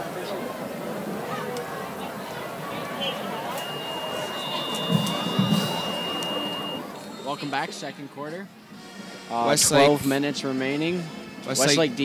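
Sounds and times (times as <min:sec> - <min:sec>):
crowd murmuring: 0:00.0 - 0:09.3
steady high-pitched tone: 0:03.6 - 0:07.0.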